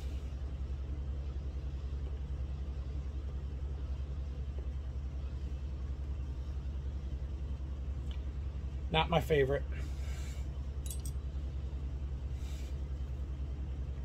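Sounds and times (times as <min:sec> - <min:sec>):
steady low pulsing hum: 0:00.0 - 0:14.0.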